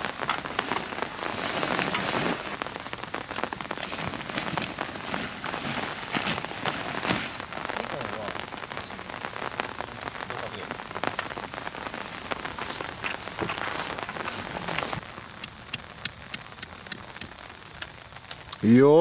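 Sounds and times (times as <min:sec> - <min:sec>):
canvas tent rustling on grass: 0:00.0 - 0:15.7
light rain pattering: 0:00.0 - 0:19.0.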